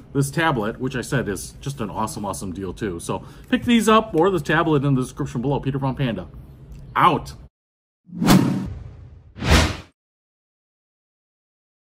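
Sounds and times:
whoosh sound effects: 0:08.1 - 0:09.9.

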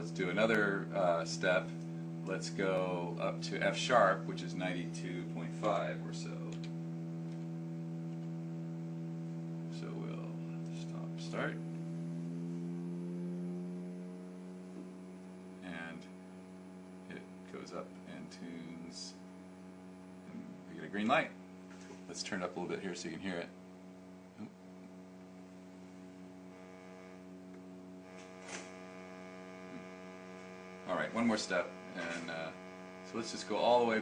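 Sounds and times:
sustained guitar string tone: 0:09.3 - 0:17.5, 0:27.9 - 0:34.0.

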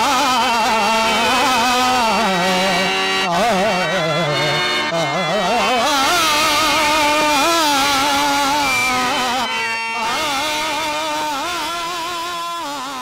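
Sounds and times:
man singing classical style: 0:00.0 - 0:13.0.

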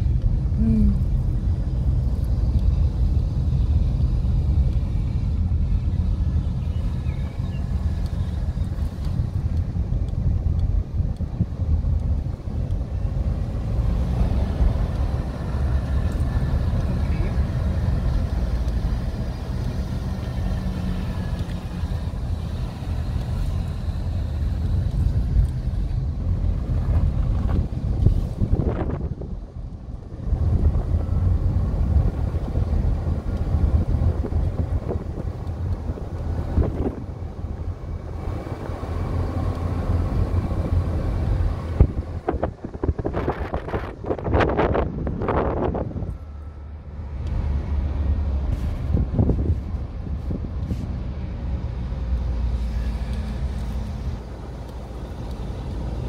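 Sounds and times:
car engine and road noise: 0:00.0 - 0:56.0.

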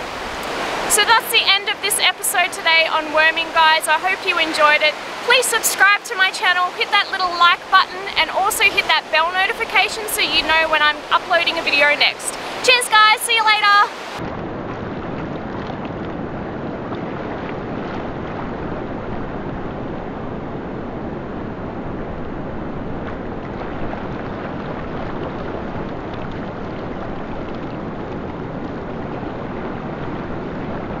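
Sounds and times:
surf on a beach: 0:00.0 - 0:31.0
wind buffeting microphone: 0:00.0 - 0:31.0.

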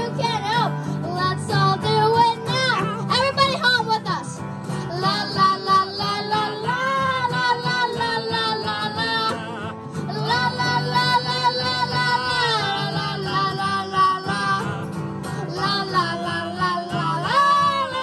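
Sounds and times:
acoustic guitars strumming: 0:00.0 - 0:18.0
boy singing: 0:00.0 - 0:18.0.

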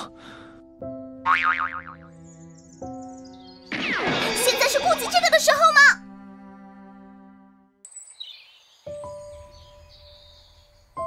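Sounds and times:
background music with sustained chords: 0:00.0 - 0:07.8
cartoon boing sound effect: 0:01.3 - 0:02.0.

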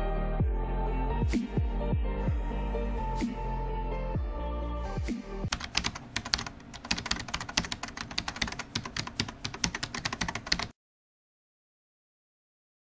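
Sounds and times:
background music: 0:00.0 - 0:10.4
rapid keyboard clicking: 0:05.5 - 0:10.8.

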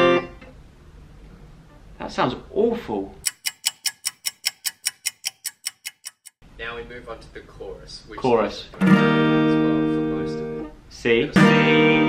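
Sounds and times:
clock ticking: 0:03.2 - 0:06.4.

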